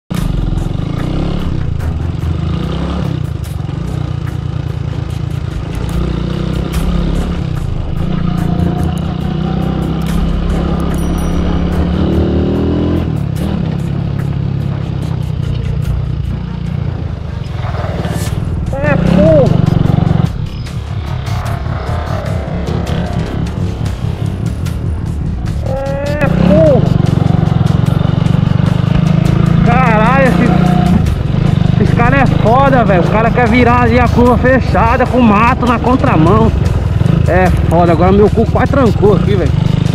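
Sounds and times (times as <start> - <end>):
motorcycle engine running: 0.1 - 39.9
voice or music: 18.4 - 39.9.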